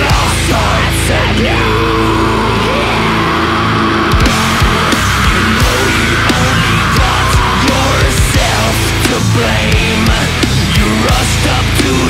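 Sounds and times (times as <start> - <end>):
distorted guitar and bass chord: 0.0 - 12.0.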